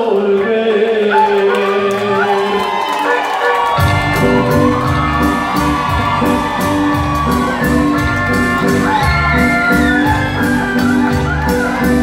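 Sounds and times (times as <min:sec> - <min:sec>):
crowd cheering: 0:00.0 - 0:12.0
saxophones playing: 0:01.1 - 0:12.0
bass and drums beat: 0:03.7 - 0:12.0.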